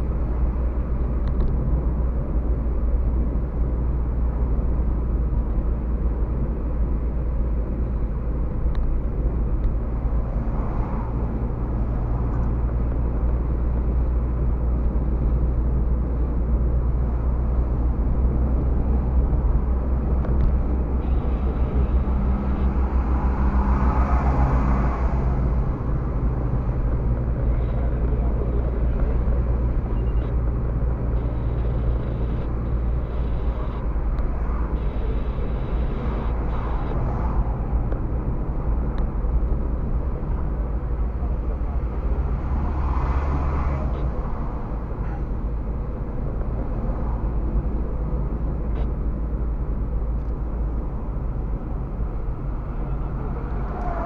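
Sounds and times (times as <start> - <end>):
car engine in cabin: 0.0 - 54.0
tyre noise on road: 0.0 - 54.0.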